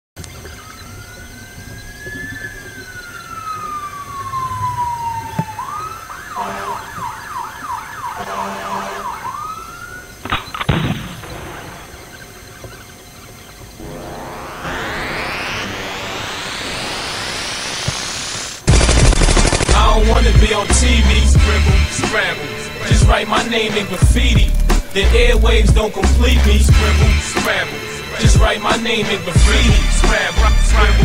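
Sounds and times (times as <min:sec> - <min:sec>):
police siren wailing and yelping: 0:00.4 - 0:10.3, 0:13.8 - 0:31.0
sharp cracks: 0:10.2 - 0:11.5, 0:17.5 - 0:21.1, 0:22.0 - 0:26.7, 0:27.3 - 0:27.8
rising whoosh: 0:13.8 - 0:18.6.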